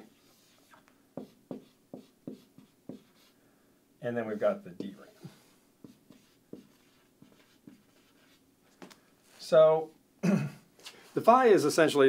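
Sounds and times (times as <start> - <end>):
marker writing on whiteboard: 0.2 - 3.4, 4.4 - 5.0, 5.8 - 8.4.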